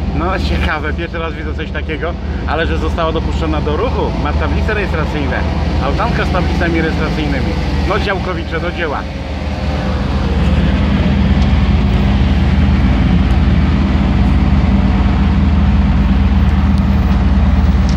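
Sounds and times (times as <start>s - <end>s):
van engine and road noise: 0.0s - 17.9s.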